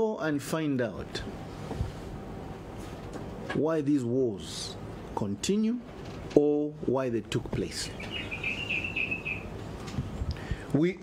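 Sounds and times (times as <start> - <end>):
bird chirping: 7.8 - 9.6.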